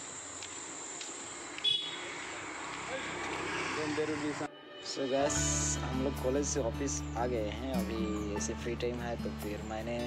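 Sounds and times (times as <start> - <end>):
street traffic hiss: 0.0 - 7.6
motor scooter passing: 1.4 - 4.5.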